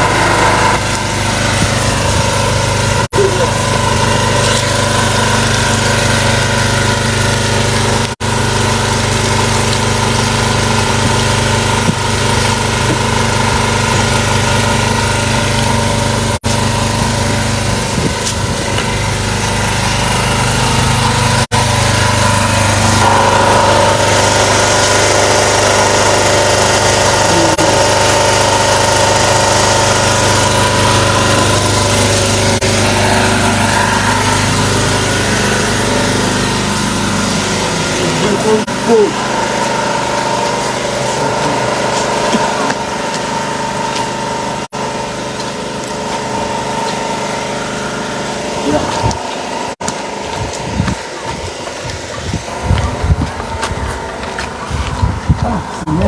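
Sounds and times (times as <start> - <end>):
small engine humming: 0.0 - 56.0.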